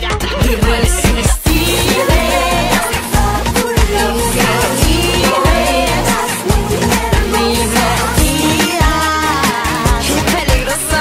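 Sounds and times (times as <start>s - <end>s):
women singing pop song: 0.0s - 11.0s
steady drum beat: 0.4s - 9.2s.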